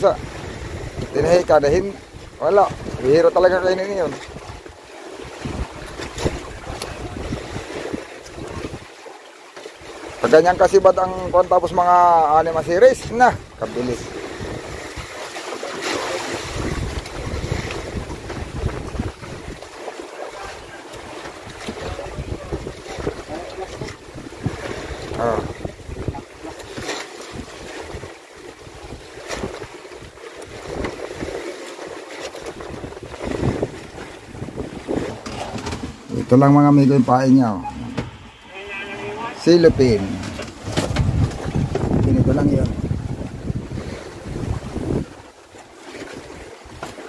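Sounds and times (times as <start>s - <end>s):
wind buffeting microphone: 0.0s - 8.9s, 12.5s - 15.2s, 16.3s - 19.7s, 20.4s - 29.8s, 32.4s - 36.6s, 37.4s - 45.4s
sea water washing against boat: 0.0s - 47.0s.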